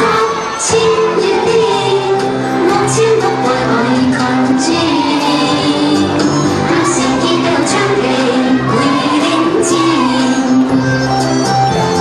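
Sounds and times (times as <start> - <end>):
children's song with singing voices: 0.0 - 12.0.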